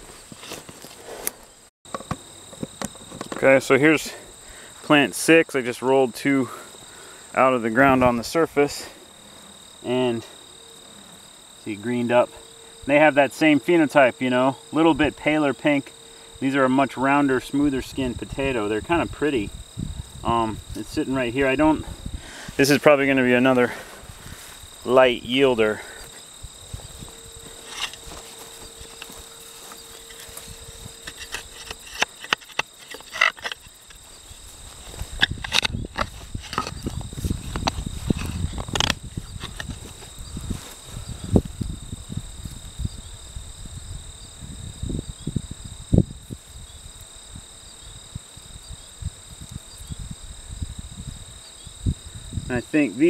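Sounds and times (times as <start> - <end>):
crickets trilling: 0.0 - 53.0
rustling of vines: 19.6 - 42.8
garden fork digging in soil: 27.6 - 34.0.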